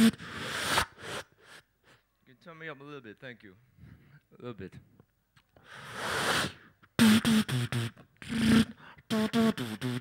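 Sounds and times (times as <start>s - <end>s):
beatboxer breathy hiss: 0.0s - 2.0s, 5.6s - 10.0s.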